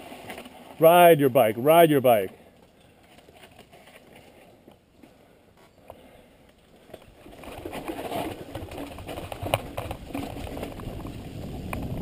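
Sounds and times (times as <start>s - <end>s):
bike clicks and rattles: 2.3s - 12.0s
bike tyres rumbling on dirt: 6.8s - 12.0s.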